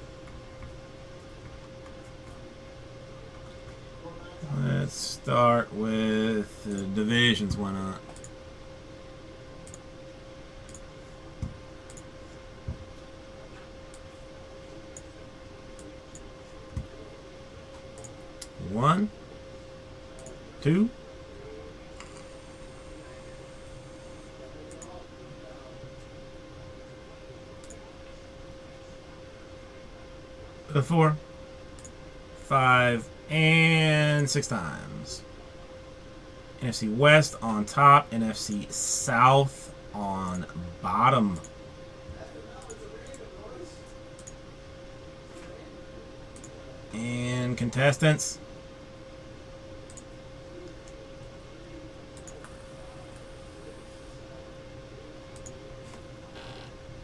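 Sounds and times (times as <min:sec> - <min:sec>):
faint constant hum: 0:00.0 - 0:57.0
steady background hiss: 0:00.0 - 0:57.0
computer mouse clicks: 0:08.1 - 0:08.4, 0:09.6 - 0:09.8, 0:11.8 - 0:12.1, 0:24.7 - 0:24.9, 0:44.2 - 0:44.4, 0:52.2 - 0:52.6, 0:55.3 - 0:56.0.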